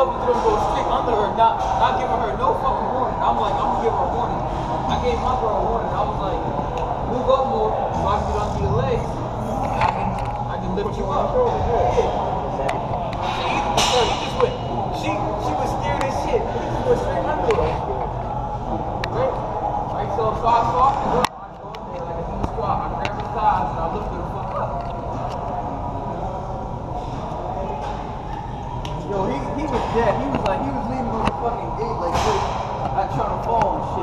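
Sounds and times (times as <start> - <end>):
voices talking: 0.0 - 34.0.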